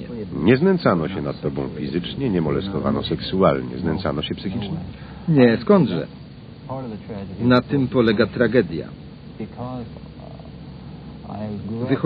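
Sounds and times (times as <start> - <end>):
man speaking: 0.0 - 6.1, 11.3 - 12.0
low hum and hiss: 0.0 - 12.0.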